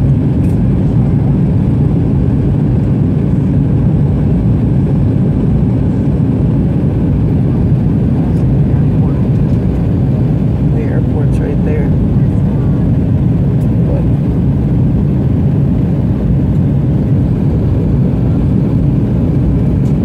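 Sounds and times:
airplane cabin roar: 0.0 - 20.0.

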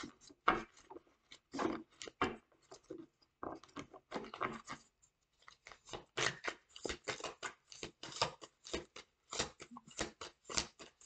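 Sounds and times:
cards being shuffled by hand: 3.6 - 11.0.

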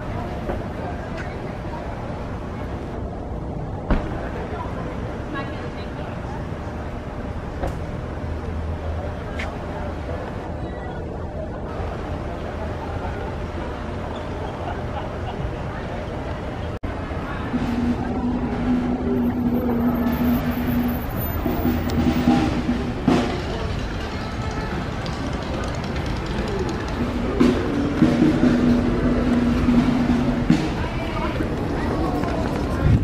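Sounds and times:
street noise: 0.0 - 33.0.

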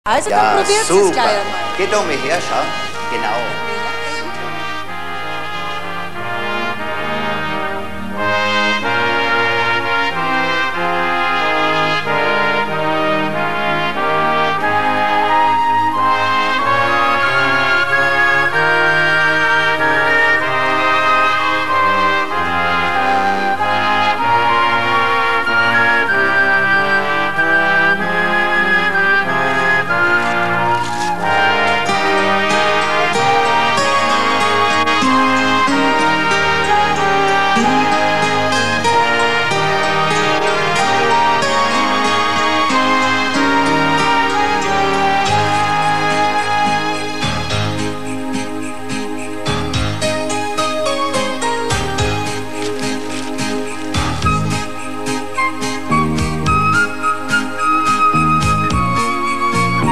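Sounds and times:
brass section playing carols: 0.1 - 59.9.

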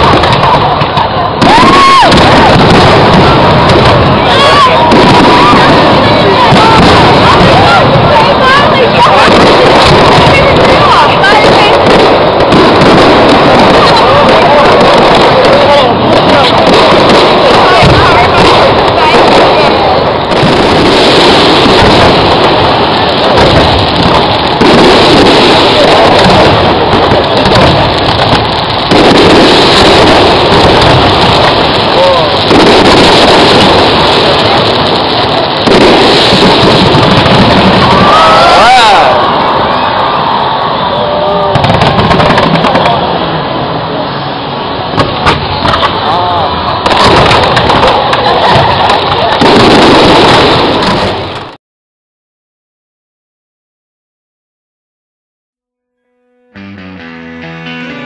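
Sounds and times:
crowd voices: 0.0 - 51.5, 56.0 - 58.0
fireworks exploding: 0.0 - 51.6, 56.0 - 58.0.

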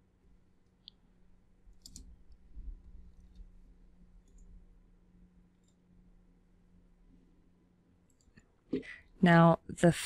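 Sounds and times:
computer mouse clicks: 1.7 - 3.6, 4.2 - 4.6, 5.5 - 5.9, 8.0 - 8.9.

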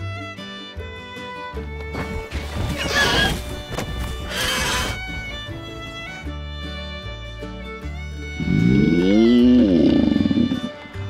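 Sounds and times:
background music: 0.0 - 11.0
shrill dinosaur screech: 2.8 - 3.4, 4.3 - 5.0.

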